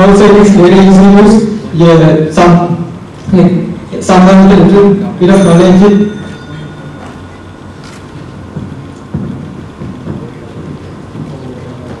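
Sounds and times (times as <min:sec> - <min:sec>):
low rumble of a large hall: 0:00.0 - 0:12.0
faint knocks: 0:08.2 - 0:12.0.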